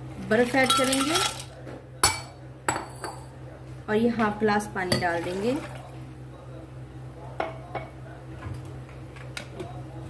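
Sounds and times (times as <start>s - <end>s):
glassware clinking on counter: 0.6s - 3.3s.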